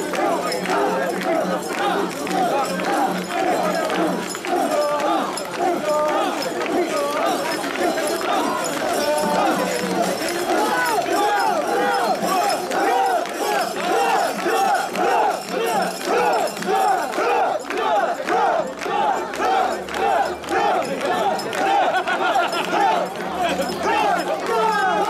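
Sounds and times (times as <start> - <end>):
crowd chanting in unison: 0.0 - 25.0.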